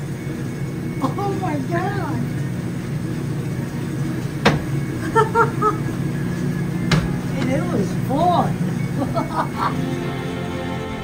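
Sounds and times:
claw machine hum: 0.0s - 11.0s.

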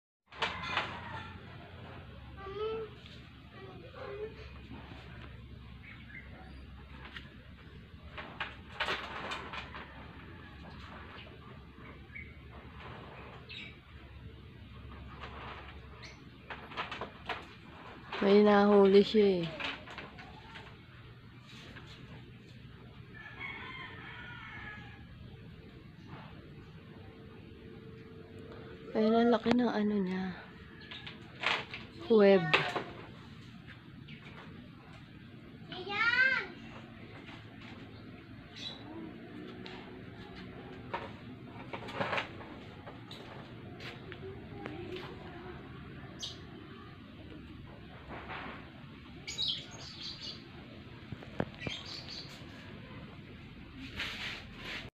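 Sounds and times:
outdoor background noise: 0.3s - 54.9s
small birds chirping: 3.6s - 7.9s, 11.2s - 12.6s, 13.2s - 14.9s, 37.8s - 39.2s, 49.2s - 53.0s.

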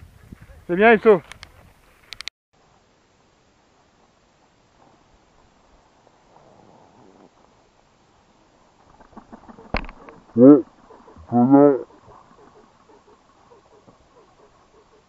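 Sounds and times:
rustling of vegetation: 0.0s - 15.0s.

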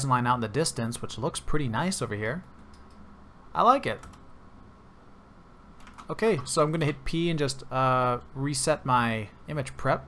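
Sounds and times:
faint steady hum: 0.0s - 10.0s
computer clicks: 2.4s - 3.1s, 3.9s - 4.3s, 5.8s - 6.5s.

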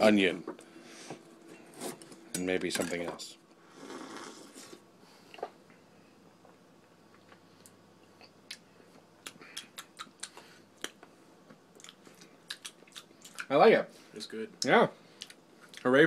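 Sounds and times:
lip smacks: 7.1s - 11.1s, 11.8s - 13.5s
tongue clicks: 9.2s - 11.0s, 11.8s - 13.5s.

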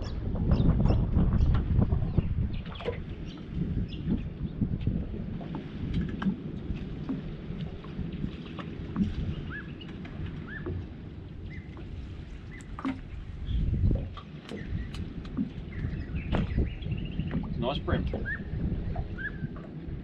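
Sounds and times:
water against a metal boat: 0.0s - 20.0s
wind: 0.0s - 20.0s.

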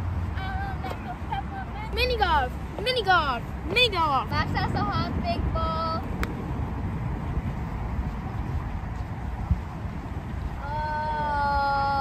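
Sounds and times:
wind rumble on microphone: 0.0s - 12.0s
girl's high-pitched cry: 10.6s - 12.0s.

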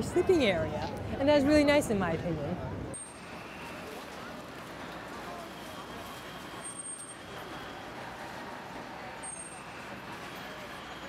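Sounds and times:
distant voices chattering: 0.0s - 11.0s
street traffic: 0.0s - 11.0s.

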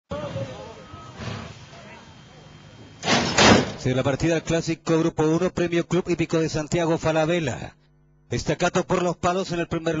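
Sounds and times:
starting gate doors banging open: 3.0s - 3.9s.

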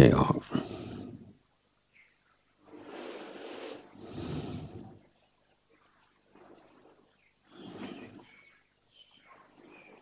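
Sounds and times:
soft slow breathing: 0.4s - 1.4s, 2.6s - 5.2s, 6.4s - 8.6s.

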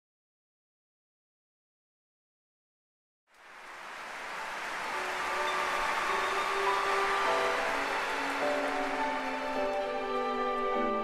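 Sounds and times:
audience noise: 3.4s - 11.0s
orchestra strings playing chords: 3.8s - 11.0s.

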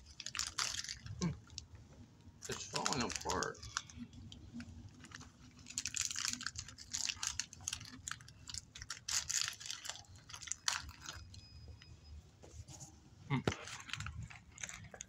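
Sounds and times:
crunchy snack chewing: 5.0s - 11.3s.

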